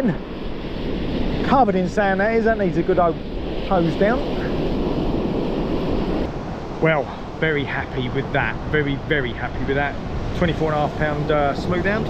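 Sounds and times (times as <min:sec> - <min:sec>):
surf on the shore: 0:00.0 - 0:12.0
wind on microphone: 0:00.0 - 0:12.0.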